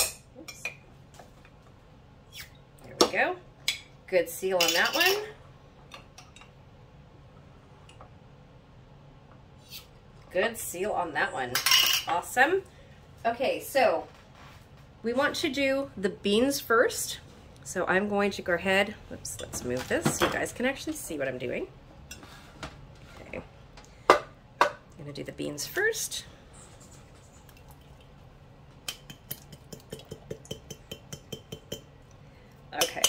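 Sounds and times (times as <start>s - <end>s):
low room hum: 0.0s - 33.0s.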